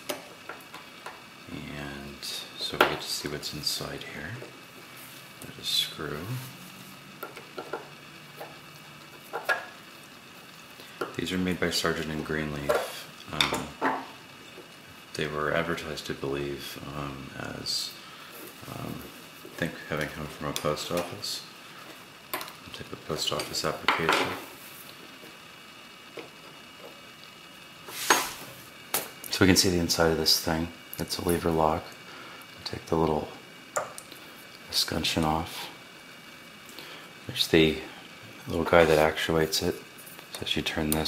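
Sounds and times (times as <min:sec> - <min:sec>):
low steady hiss: 0:00.0 - 0:41.0
metal scraping rustle: 0:27.9 - 0:28.7.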